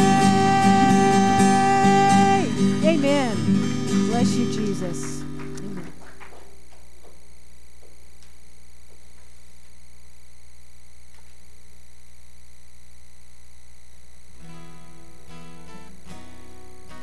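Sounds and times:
guitar chord: 0:00.0 - 0:05.8
electrical hum from sound system: 0:00.0 - 0:17.0.

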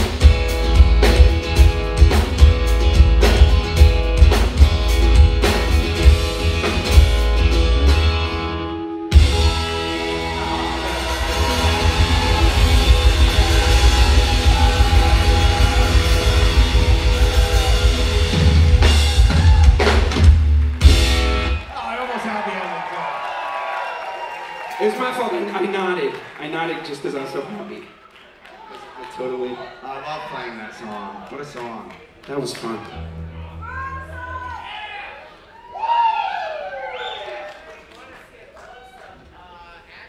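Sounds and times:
rock band with acoustic guitar: 0:00.0 - 0:21.8
person whooping: 0:33.6 - 0:37.6.

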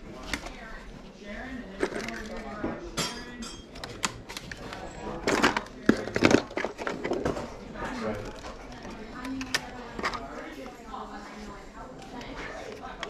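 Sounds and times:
pens rummaged in drawer: 0:01.6 - 0:10.8
plastic objects clattering: 0:01.7 - 0:02.8, 0:03.7 - 0:10.3.

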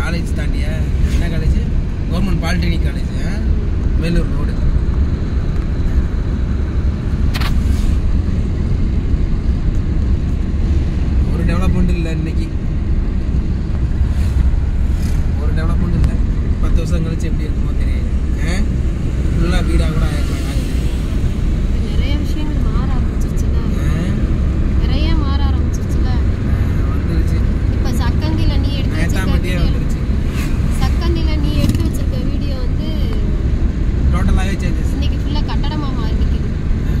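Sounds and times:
people talking: 0:00.0 - 0:04.6, 0:15.4 - 0:18.7, 0:19.4 - 0:20.8, 0:21.8 - 0:24.2, 0:24.8 - 0:26.2, 0:26.8 - 0:30.0, 0:30.8 - 0:33.4, 0:34.2 - 0:36.5
car driving rumble from inside: 0:00.0 - 0:37.0.

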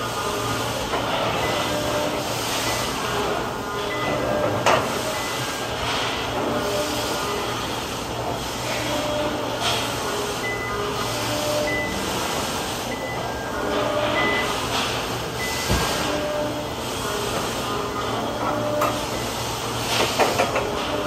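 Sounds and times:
forklift mechanical hum: 0:00.0 - 0:21.0.

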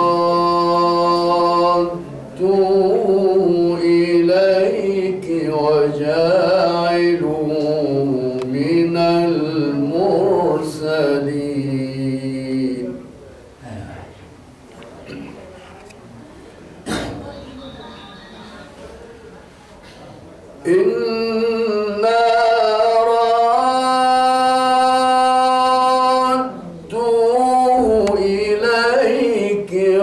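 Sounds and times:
man chanting melodically: 0:00.0 - 0:14.2, 0:20.6 - 0:30.0.

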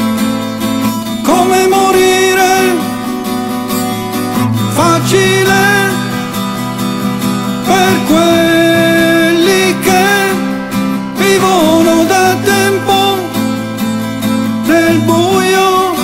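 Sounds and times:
strummed acoustic guitar: 0:00.0 - 0:16.0.

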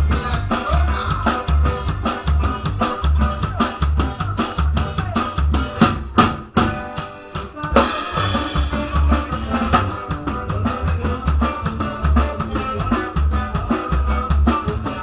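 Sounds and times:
drum kit beat: 0:00.0 - 0:15.0
live band playing: 0:00.0 - 0:15.0.

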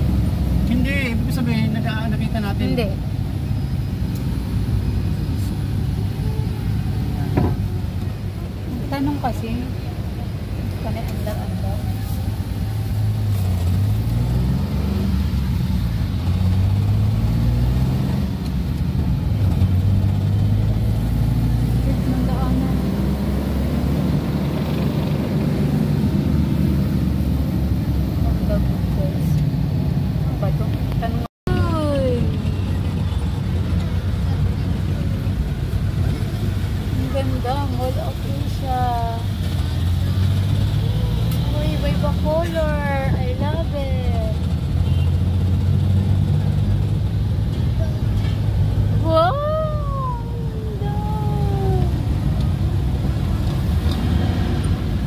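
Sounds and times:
car engine: 0:00.0 - 0:55.0
road noise: 0:00.0 - 0:55.0.

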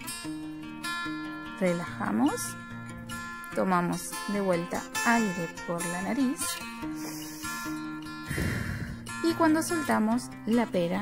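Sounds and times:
acoustic guitar music: 0:00.0 - 0:11.0.

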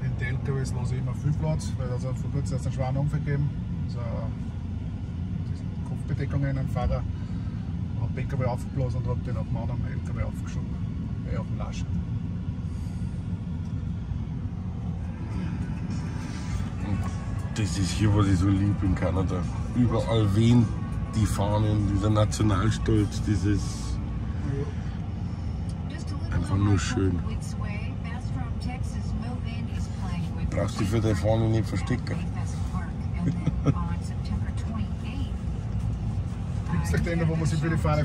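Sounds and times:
road and engine rumble in vehicle: 0:00.0 - 0:38.0.

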